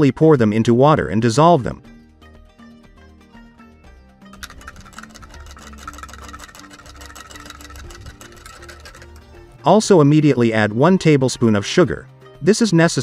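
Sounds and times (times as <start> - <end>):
soft background music: 0.0 - 13.0
metal spoon stirring in glass jar: 4.4 - 9.5.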